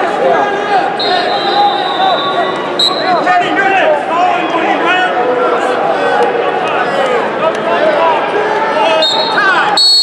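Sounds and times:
crowd chatter: 0.0 - 10.0
people shouting: 7.9 - 9.8.

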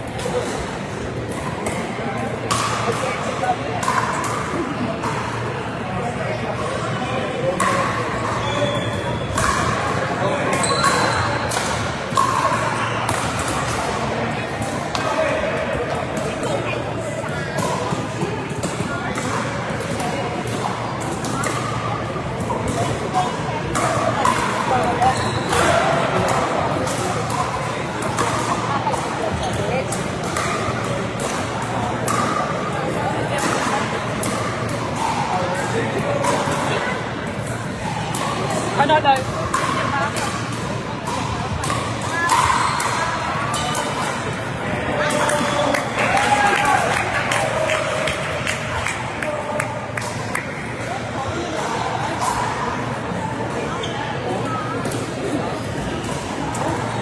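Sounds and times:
babble of voices: 0.0 - 57.0.

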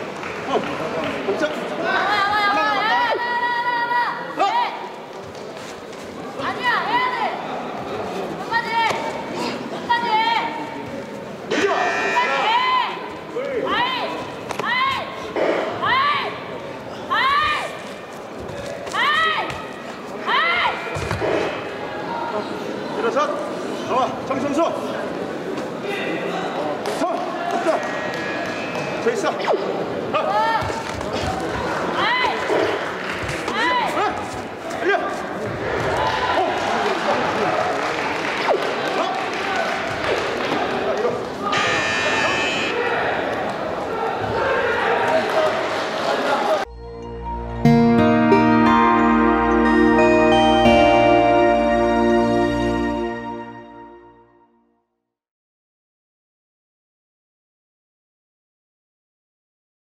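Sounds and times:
murmur of voices: 0.0 - 46.9
electronic buzzer tone: 11.5 - 12.5, 41.5 - 42.8.

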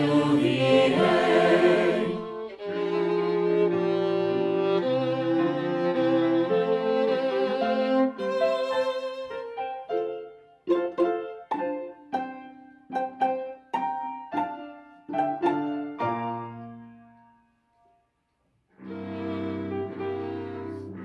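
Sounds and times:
piano chords: 0.0 - 17.5.

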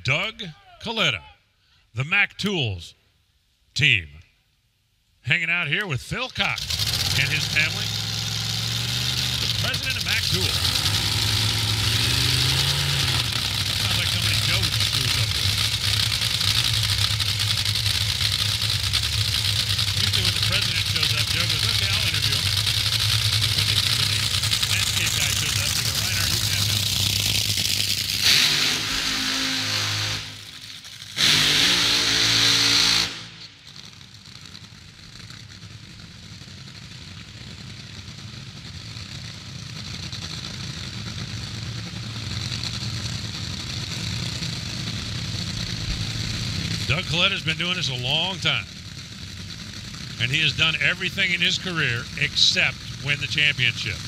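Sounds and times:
dragster engines running loudly: 5.6 - 54.0
full-throttle engine bursts: 5.8 - 36.9, 37.9 - 54.0.

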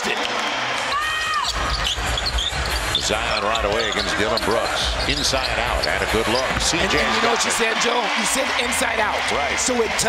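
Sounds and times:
arena crowd noise: 0.0 - 10.0
high squeak: 1.3 - 6.5.

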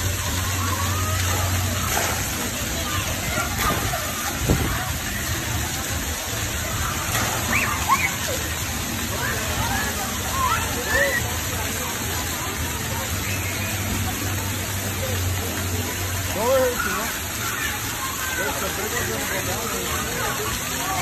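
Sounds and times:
fountain jets hissing and splashing: 0.0 - 21.0
children shouting: 0.1 - 2.1, 6.6 - 11.4, 16.6 - 19.1.

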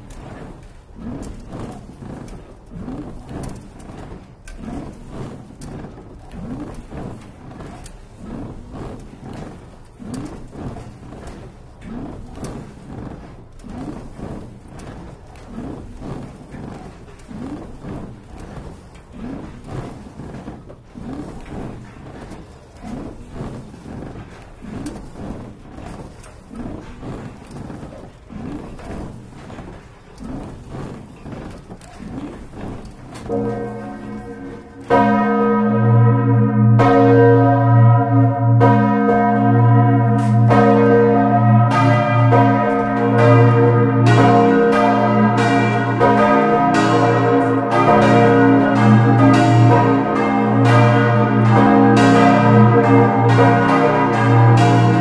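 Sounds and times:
faint rhythmic swinging bells: 33.1 - 55.0
church bells pealing: 33.2 - 55.0
deep great bell: 33.2 - 55.0.

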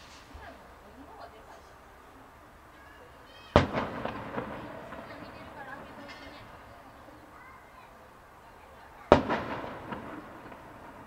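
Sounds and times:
firework shell boom with echo: 3.5 - 6.5, 9.1 - 11.0.

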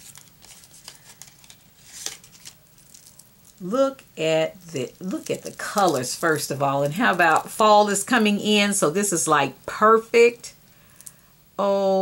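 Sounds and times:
paper packet rustling: 0.0 - 7.5.

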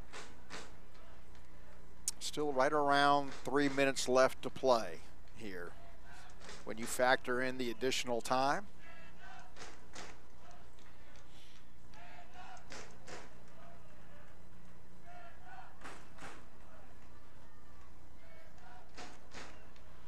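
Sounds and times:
distant players shouting: 2.4 - 9.6, 11.9 - 20.0.

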